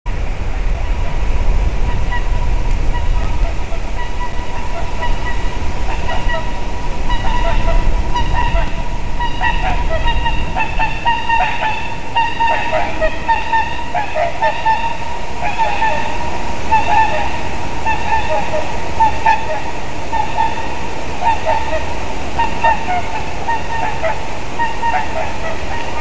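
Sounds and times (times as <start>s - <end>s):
swans honking: 0.1s - 26.0s
wind rumble on microphone: 0.1s - 26.0s.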